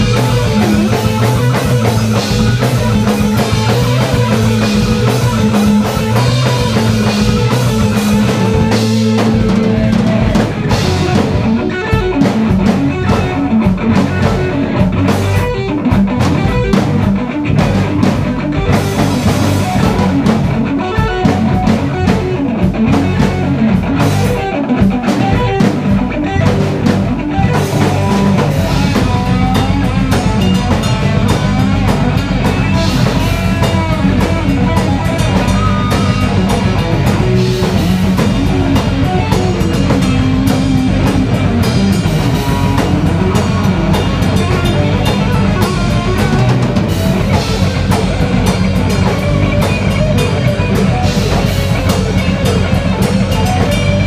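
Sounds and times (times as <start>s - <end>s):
electric guitars: 0.0s - 54.0s.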